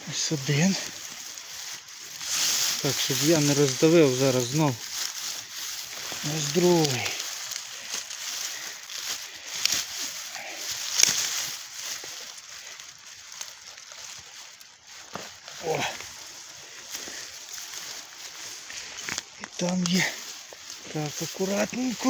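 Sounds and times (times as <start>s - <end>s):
grass and dry leaves rustling: 0.0s - 22.0s.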